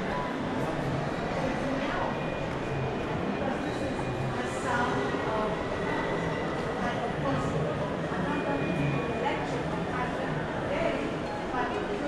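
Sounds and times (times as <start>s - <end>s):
crowd chatter indoors: 0.0s - 12.0s.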